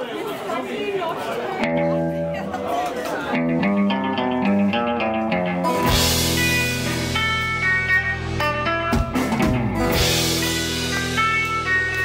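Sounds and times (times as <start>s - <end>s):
audience chatter: 0.0s - 12.0s
guitar chord ringing: 3.4s - 12.0s.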